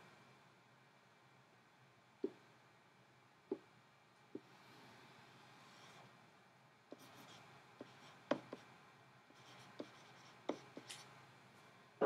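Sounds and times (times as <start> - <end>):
stylus scratching on drawing tablet: 6.9 - 8.7, 9.3 - 11.1.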